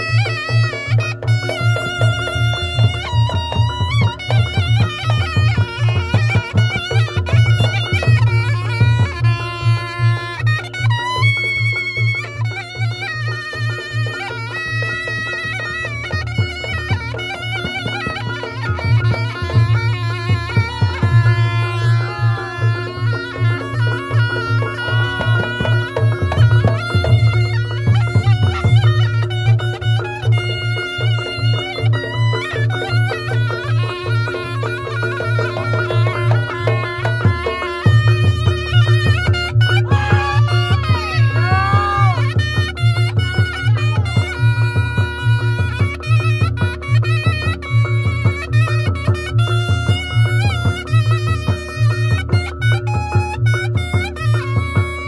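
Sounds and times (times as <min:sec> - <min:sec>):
reedy wailing shawm melody: 0:00.0 - 0:55.0
drums: 0:15.0 - 0:55.0.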